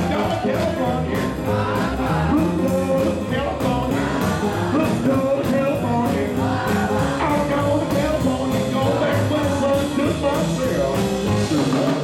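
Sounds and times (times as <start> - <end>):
double bass: 0.0 - 12.0
drums: 0.0 - 12.0
person singing: 0.0 - 12.0
swing band playing: 0.0 - 12.0.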